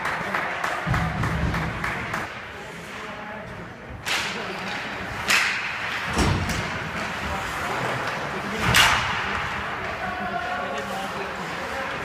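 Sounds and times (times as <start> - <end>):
stick slapping puck: 5.2 - 6.7, 8.0 - 9.3.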